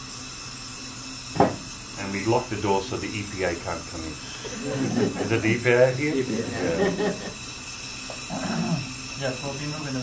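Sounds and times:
gas torch hissing: 0.0s - 10.0s.

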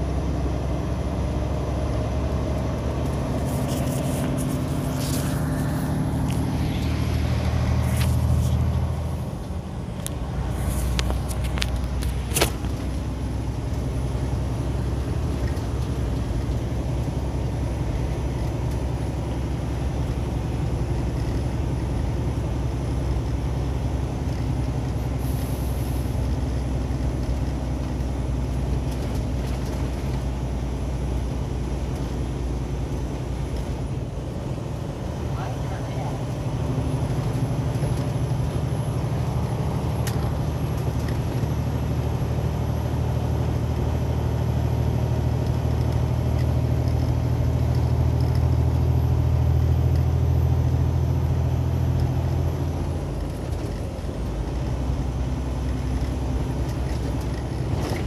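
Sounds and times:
road and tyre noise: 0.0s - 58.0s
vehicle engine droning: 0.0s - 58.0s.

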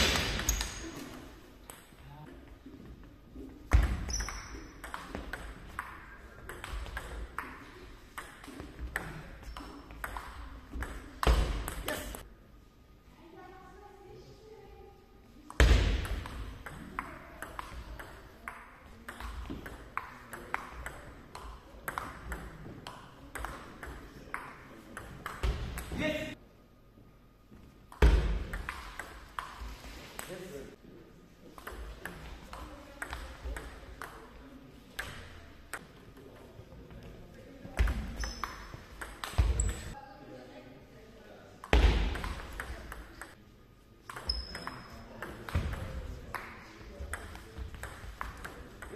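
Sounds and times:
shoe squeak: 4.0s - 4.8s, 38.2s - 38.7s.

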